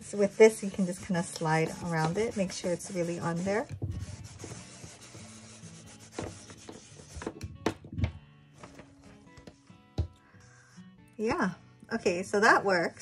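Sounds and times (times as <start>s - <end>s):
heat press rubbing on paper: 0.0s - 7.5s
soft background music: 0.0s - 13.0s.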